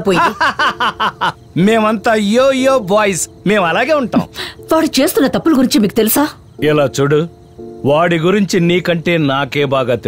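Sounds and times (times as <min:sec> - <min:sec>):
man talking: 0:01.6 - 0:04.3, 0:06.6 - 0:10.0.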